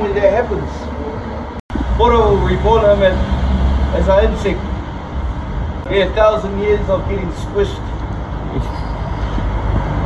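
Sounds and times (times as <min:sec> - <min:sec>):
vehicle engine rumble passing: 0:00.0 - 0:10.0.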